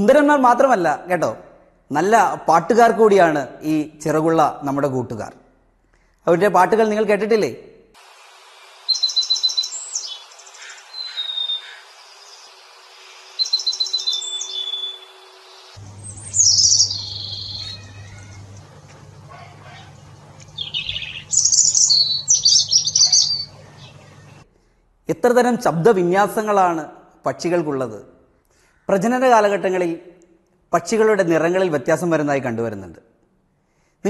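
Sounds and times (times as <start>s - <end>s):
songbird trills and whistles: 8.9s - 12.4s, 13.4s - 18.4s, 20.5s - 24.2s
robin singing warbling phrases: 8.9s - 12.7s, 13.4s - 18.5s, 20.5s - 24.4s.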